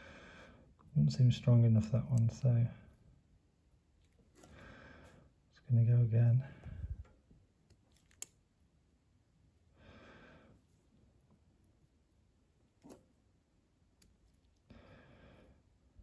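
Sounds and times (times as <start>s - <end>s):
soft breaths: 0.0s - 0.9s, 4.2s - 5.5s, 6.4s - 7.3s, 9.7s - 11.5s, 14.5s - 16.0s.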